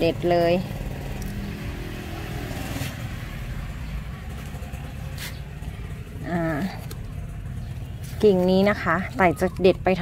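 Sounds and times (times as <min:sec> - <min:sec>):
faint engine drone: 0:00.0 - 0:10.0
low engine rumble: 0:00.0 - 0:10.0.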